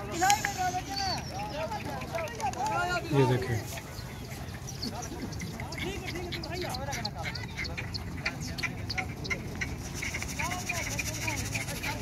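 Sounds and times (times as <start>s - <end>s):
men calling and shouting: 0.0s - 12.0s.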